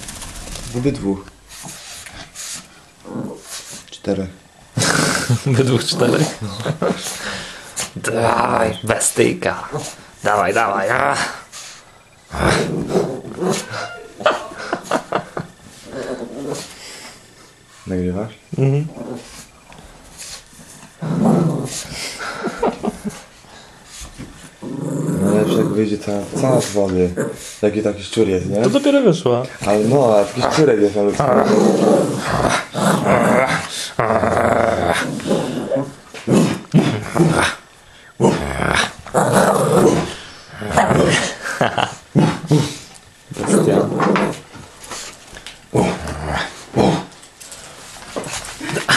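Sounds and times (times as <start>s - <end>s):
puppy growling: 3.0s - 3.8s, 4.8s - 8.8s, 12.3s - 17.1s, 18.8s - 23.3s, 24.4s - 27.7s, 29.6s - 47.3s.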